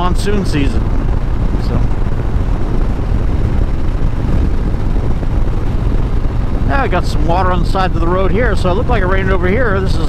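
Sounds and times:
motorcycle engine rumble: 0.0s - 10.0s
wind rush on microphone: 0.0s - 10.0s.

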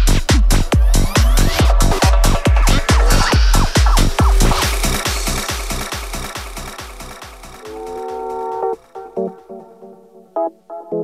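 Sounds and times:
psytrance dance music: 0.0s - 10.2s.

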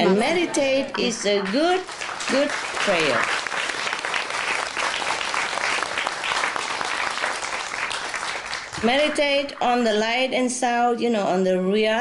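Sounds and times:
people applauding: 0.0s - 9.8s.

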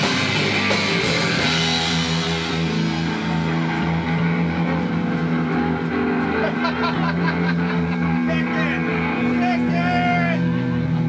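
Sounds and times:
crowd voices: 0.0s - 11.0s
distorted electric guitar and bass: 0.0s - 11.0s.

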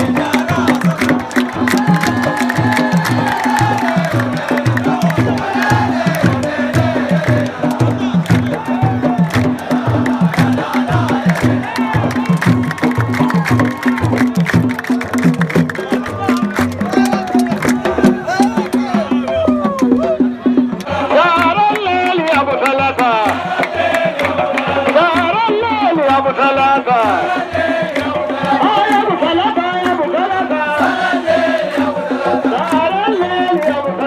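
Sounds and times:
hand-clapping: 0.0s - 19.1s, 20.8s - 26.3s, 27.8s - 31.9s, 32.5s - 34.0s
frame drums beating: 0.0s - 33.9s
crowd singing: 0.0s - 34.0s.

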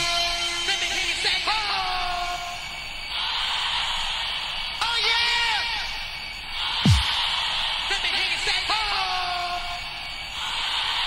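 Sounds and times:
crowd cheering: 6.7s - 7.9s.

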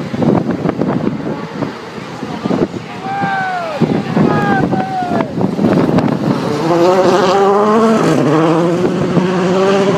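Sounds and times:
car engine running hard: 0.0s - 9.9s.

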